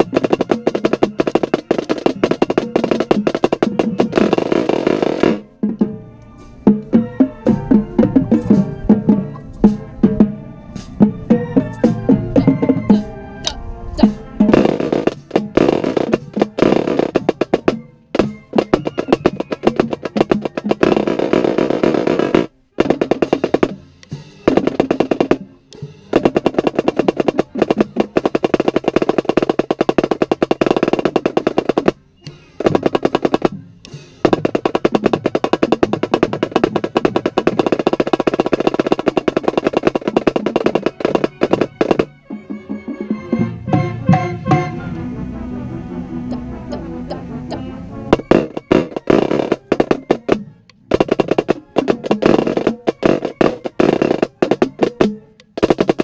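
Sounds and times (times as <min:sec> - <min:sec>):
marching snare drum rolls: 0:00.0 - 0:06.0, 0:06.6 - 0:13.2, 0:14.0 - 0:44.8, 0:47.0 - 0:56.0.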